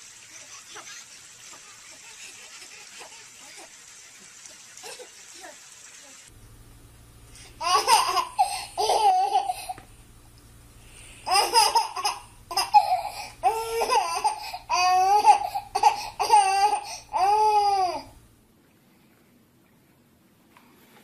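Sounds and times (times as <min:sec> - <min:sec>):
baby vocalizing: 0:07.4 - 0:09.8, 0:11.2 - 0:18.1.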